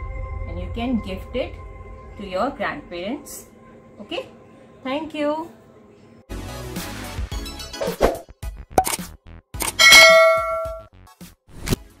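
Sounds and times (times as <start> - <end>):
bright metallic ding: 9.8 - 10.9.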